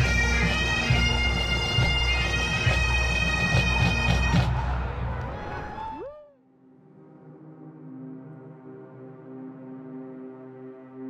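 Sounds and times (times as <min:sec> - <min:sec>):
drum strokes: 0:00.0 - 0:04.8
bagpipes playing: 0:00.0 - 0:05.8.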